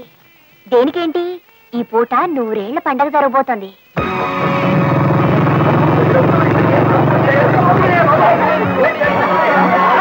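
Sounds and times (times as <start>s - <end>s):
motorcycle engine running: 4.0s - 9.0s
voices murmuring: 4.3s - 10.0s.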